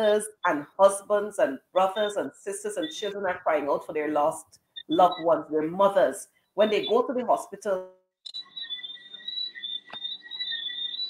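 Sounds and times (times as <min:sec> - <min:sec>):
night insects trilling: 0:08.3 - 0:11.0.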